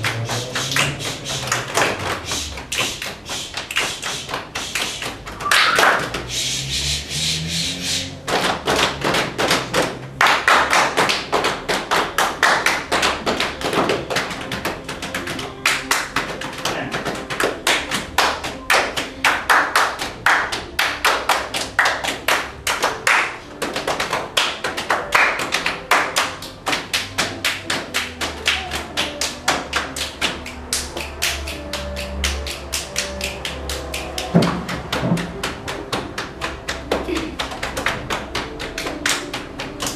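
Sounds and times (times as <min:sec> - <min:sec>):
hand claps: 0:00.0 - 0:39.9.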